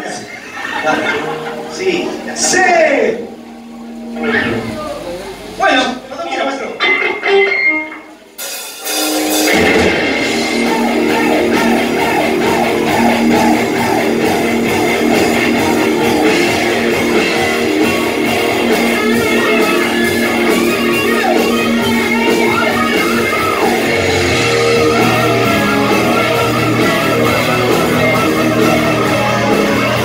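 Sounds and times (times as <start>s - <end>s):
electric guitar: 0.0s - 30.0s
rock band playing live: 0.0s - 30.0s.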